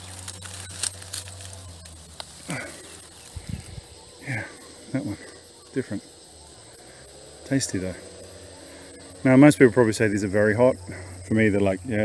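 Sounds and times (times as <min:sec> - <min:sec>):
small crackles and clicks: 0:00.0 - 0:03.9
leaves and stems rustling: 0:00.0 - 0:12.0
steady low hum: 0:00.0 - 0:12.0.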